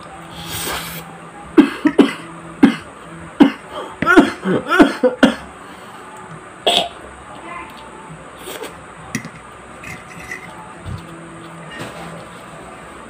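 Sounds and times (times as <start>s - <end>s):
man coughing: 1.6s - 5.4s.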